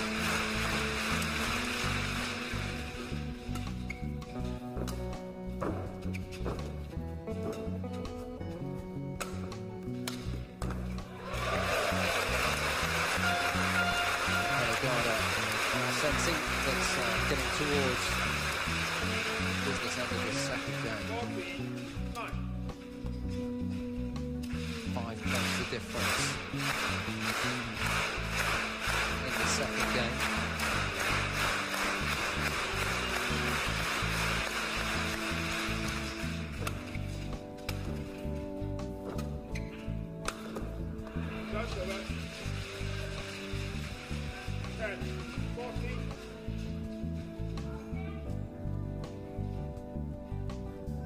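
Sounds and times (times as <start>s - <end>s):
background music with bass: 0.0s - 51.0s
racket striking shuttlecock: 3.4s - 6.7s, 9.2s - 11.0s
crowd noise: 25.1s - 36.5s.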